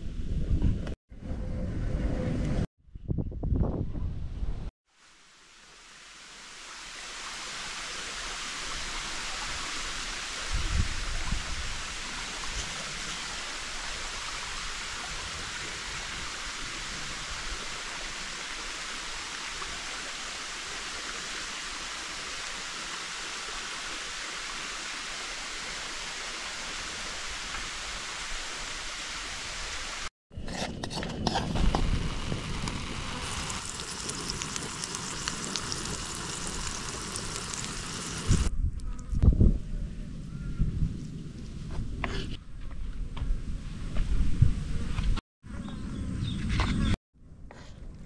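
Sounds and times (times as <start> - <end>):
rushing outdoor hiss: 4.9 - 30.1, 31.5 - 38.5.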